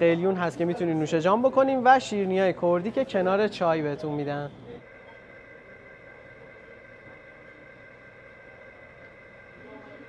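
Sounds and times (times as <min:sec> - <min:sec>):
constant hum: 0:04.5 - 0:10.0.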